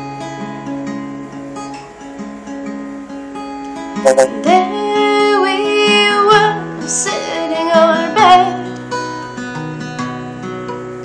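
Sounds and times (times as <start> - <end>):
acoustic guitar strumming: 0.0 - 11.0
woman singing: 4.3 - 8.7.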